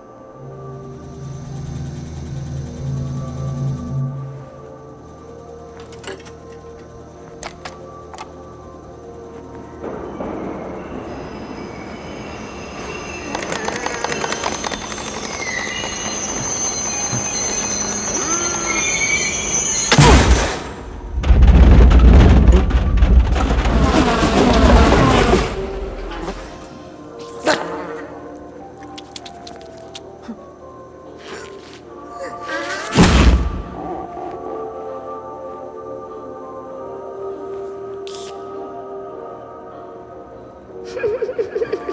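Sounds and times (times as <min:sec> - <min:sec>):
subway train rumble: 0:00.0 - 0:19.9
background music: 0:00.0 - 0:41.9.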